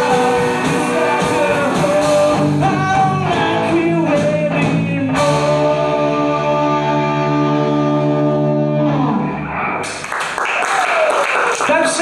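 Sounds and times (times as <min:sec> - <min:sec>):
crowd cheering and clapping: 0:09.8 - 0:12.0.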